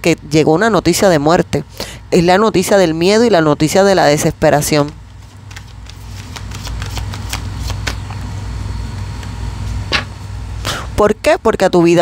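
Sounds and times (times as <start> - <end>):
card snapping: 5.5 - 8.2.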